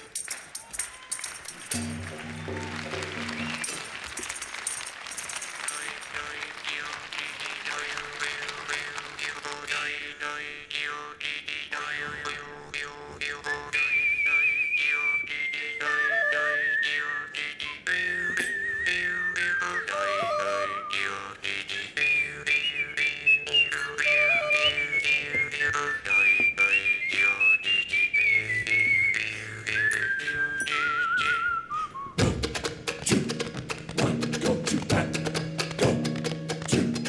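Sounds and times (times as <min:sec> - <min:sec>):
whistled melody: 0:00.0 - 0:08.9, 0:10.7 - 0:32.4
full-band music with percussive clicks: 0:00.0 - 0:09.6, 0:32.2 - 0:37.0.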